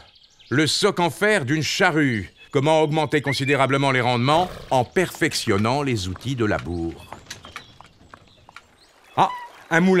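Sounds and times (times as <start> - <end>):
horse hooves walking: 3.1 - 10.0.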